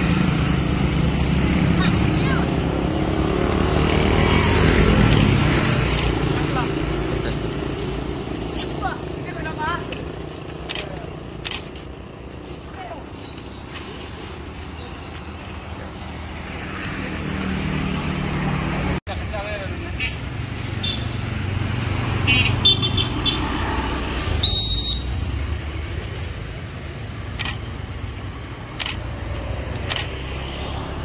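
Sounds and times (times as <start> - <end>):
motorbikes and cars passing: 0.0 - 31.0.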